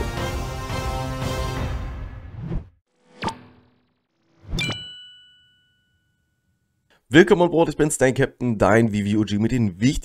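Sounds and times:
bell-like ding: 4.5s - 7.0s.

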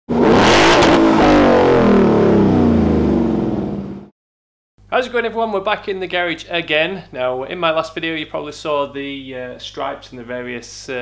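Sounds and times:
car engine revving: 0.1s - 4.1s.

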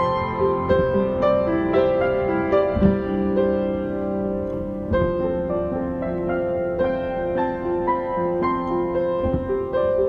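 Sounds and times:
solo piano playing slow song: 0.0s - 10.0s.

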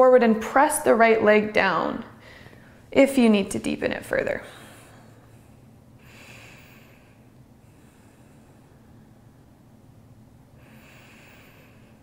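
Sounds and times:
low room hum: 0.0s - 12.0s
faint breathing: 2.2s - 2.9s, 4.4s - 9.7s, 10.5s - 12.0s.

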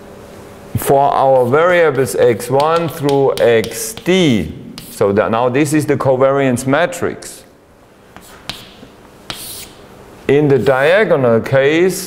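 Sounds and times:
chalk tapping on blackboard: 1.2s - 5.0s, 8.1s - 9.9s
chalk scraping on blackboard: 1.2s - 5.1s, 8.2s - 9.9s.

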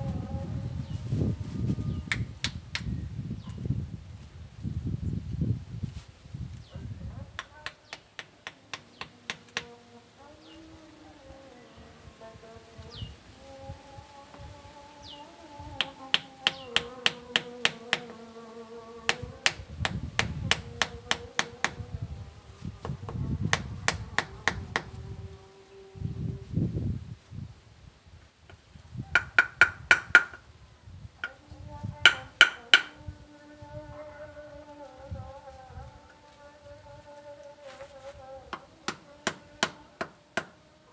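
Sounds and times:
hand hammer tapping: 7.4s - 9.7s, 15.8s - 18.1s, 19.1s - 21.8s, 29.2s - 30.4s, 32.0s - 32.9s, 38.5s - 40.6s.

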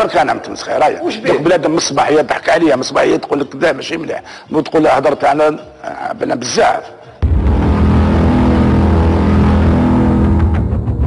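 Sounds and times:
loud low drone: 7.2s - 11.0s
rumble: 7.2s - 11.0s.

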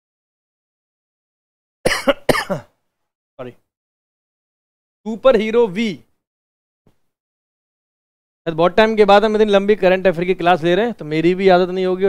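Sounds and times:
man coughing: 1.8s - 2.8s.

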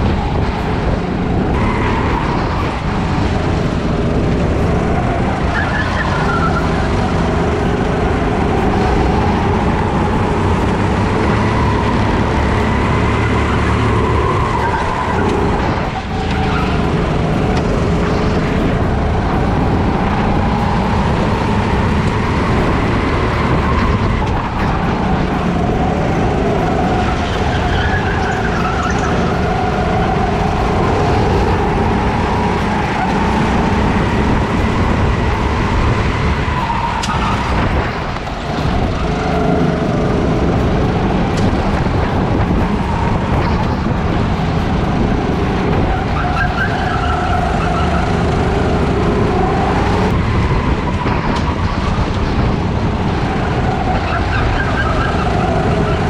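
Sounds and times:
kart engine revving: 0.0s - 56.0s
other kart engines: 0.0s - 56.0s.

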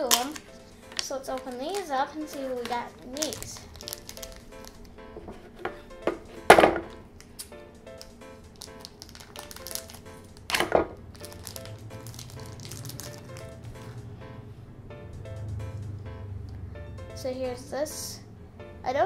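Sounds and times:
plastic bag crinkling rips: 0.0s - 4.9s, 7.2s - 13.6s
plastic rustles and clicks: 0.0s - 13.9s
light background music: 0.0s - 19.0s.

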